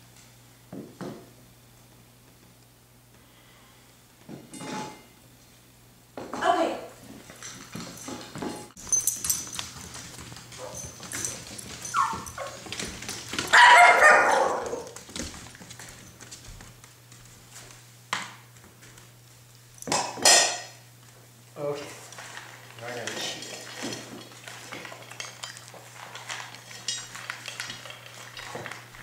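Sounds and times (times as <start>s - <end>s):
dog whining and yipping: 11.8s - 12.7s.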